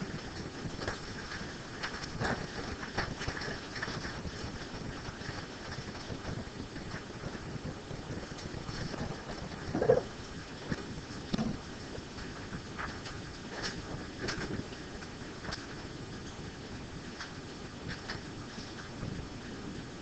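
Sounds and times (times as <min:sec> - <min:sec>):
faint clicks and rustles: 0:00.0 - 0:20.0
steady hiss: 0:00.0 - 0:20.0.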